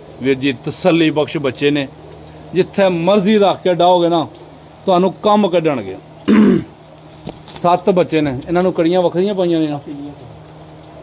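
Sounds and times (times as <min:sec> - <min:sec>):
man speaking: 0:02.6 - 0:04.3, 0:07.5 - 0:10.3
man clearing his throat: 0:06.3 - 0:06.8.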